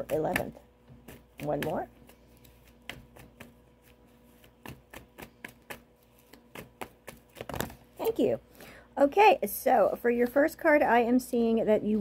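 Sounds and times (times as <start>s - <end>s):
cards being shuffled: 2.0s - 7.9s.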